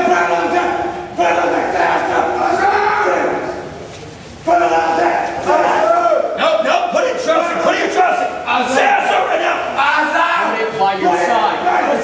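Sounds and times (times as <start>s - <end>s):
men shouting: 0.0s - 3.7s, 4.5s - 12.0s.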